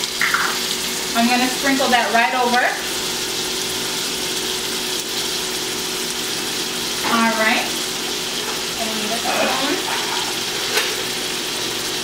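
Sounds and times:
vegetables sizzling in a metal pan: 0.0s - 12.0s.

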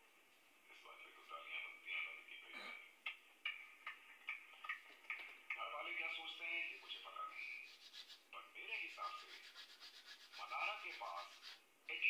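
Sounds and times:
hands scratching through hair: 7.5s - 11.6s.

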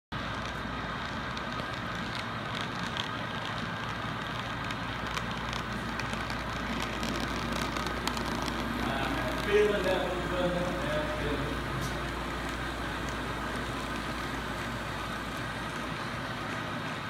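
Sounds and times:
model train rolling rattle: 0.2s - 17.0s
faint clicks: 0.3s - 10.0s.

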